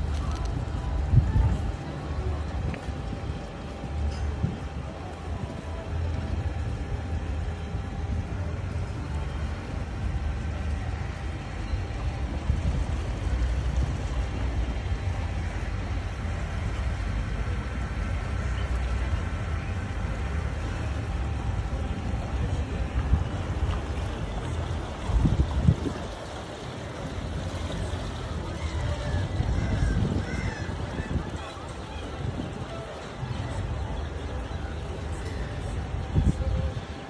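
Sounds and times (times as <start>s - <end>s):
boat motor rumbling: 0.0s - 37.0s
wind on microphone: 0.0s - 37.0s.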